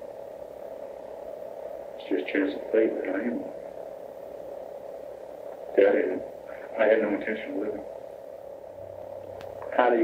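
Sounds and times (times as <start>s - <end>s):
cassette tape hum and hiss: 0.0s - 10.0s.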